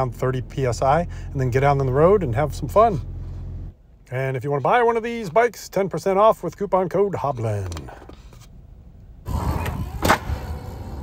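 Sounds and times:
sharp crack: 0:09.5 - 0:10.6.

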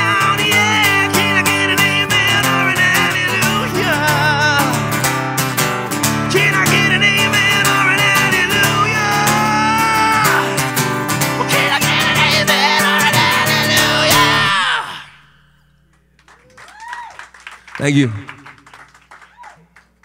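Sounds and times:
man singing with vibrato: 0:00.0 - 0:05.0, 0:06.0 - 0:15.6
strummed acoustic guitar: 0:00.0 - 0:15.6.

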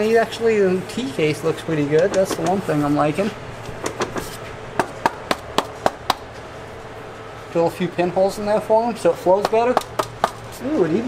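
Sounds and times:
sharp knocks: 0:03.8 - 0:06.4, 0:09.4 - 0:10.4.

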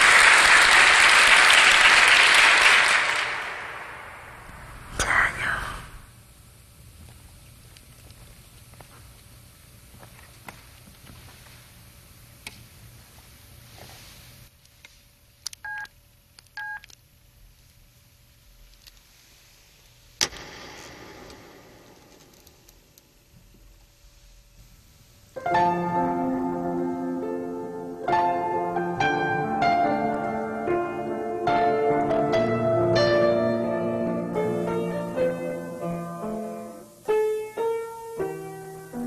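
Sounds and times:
sharp slam against piano: 0:20.2 - 0:23.0
piano strings ringing: 0:25.4 - 0:39.0.

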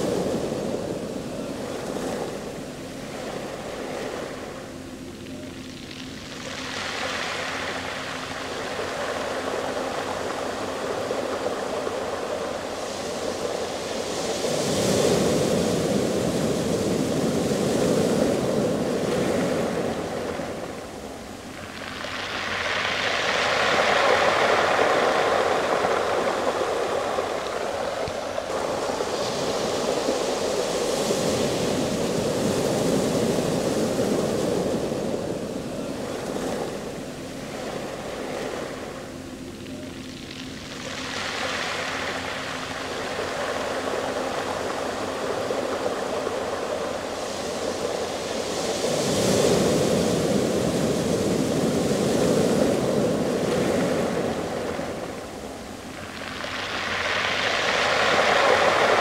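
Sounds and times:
surf on pebble beach: 0:00.0 - 0:59.0.

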